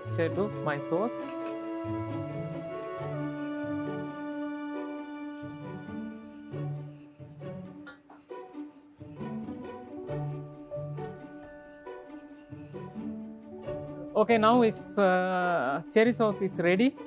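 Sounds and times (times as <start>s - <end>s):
slow string music: 0.0s - 17.0s.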